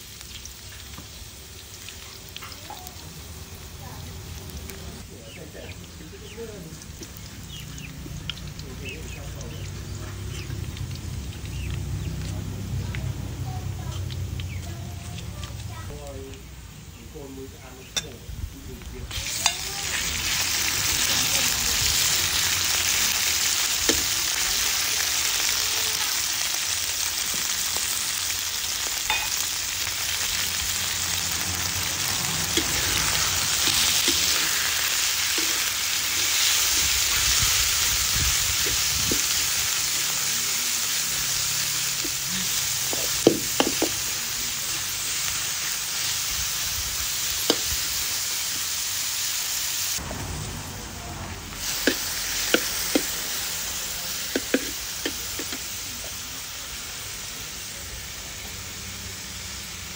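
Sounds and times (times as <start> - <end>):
meat sizzling in a wok: 0.0 - 59.9.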